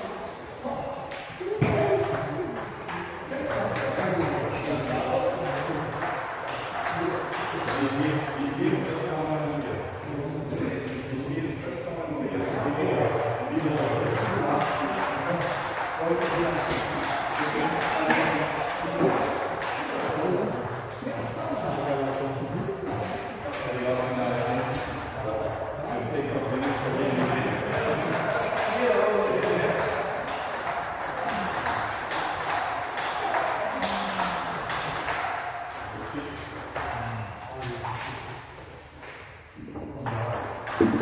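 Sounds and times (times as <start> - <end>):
voices in a hall: 0.0 - 41.0
table tennis balls clicking: 1.1 - 9.7, 12.4 - 25.6, 26.3 - 41.0.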